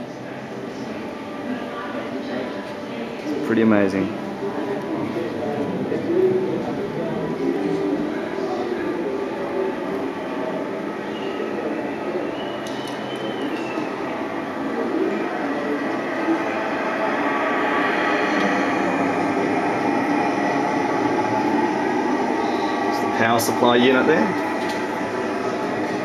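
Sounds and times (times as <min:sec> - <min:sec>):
murmur of voices: 0:00.0 - 0:26.0
gliding whistle-like tone: 0:10.2 - 0:26.0
rumbling room noise: 0:13.2 - 0:26.0.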